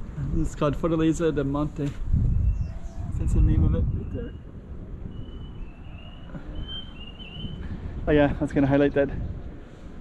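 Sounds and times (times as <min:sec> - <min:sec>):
wind rumble on microphone: 0:00.0 - 0:10.0
high thin bird calls: 0:05.1 - 0:07.7.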